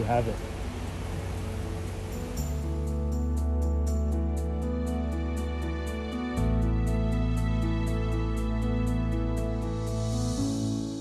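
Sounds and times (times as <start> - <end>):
steady hiss: 0.0 - 4.8
soft background music: 0.0 - 11.0.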